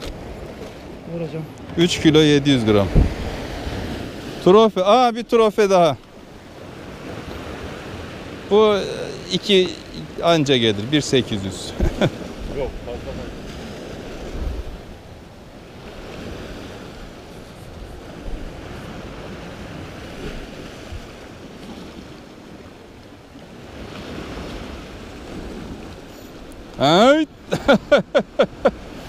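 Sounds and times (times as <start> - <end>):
wind rumbling on microphone: 0.0 - 4.4, 11.7 - 26.8
waves breaking on rocks: 0.0 - 29.0.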